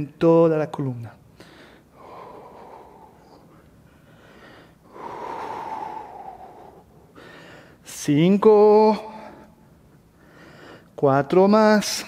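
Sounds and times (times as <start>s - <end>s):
man breathing: 1.3s - 7.9s, 9.0s - 11.0s.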